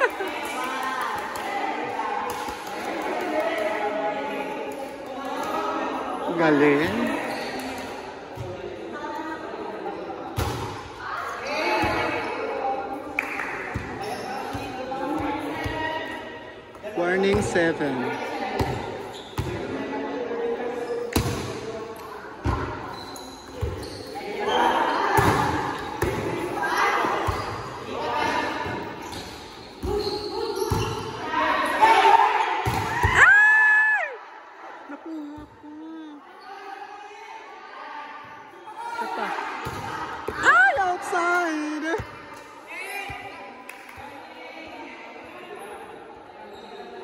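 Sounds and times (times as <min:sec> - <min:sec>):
echoing babble of voices: 0:00.0 - 0:47.0.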